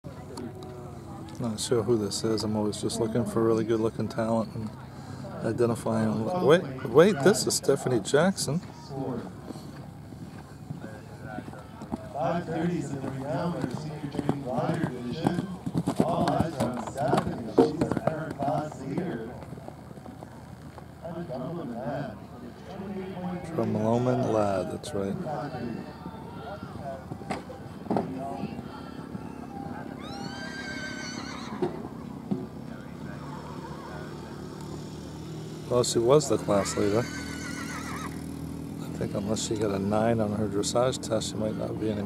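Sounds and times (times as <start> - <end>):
people talking: 0.1 - 9.5, 10.3 - 19.6, 21.0 - 30.3, 31.6 - 34.4, 35.7 - 37.1, 38.9 - 42.0
horse hoofbeats on sand: 10.0 - 20.8
horse whinnying: 29.3 - 31.8, 36.4 - 38.4.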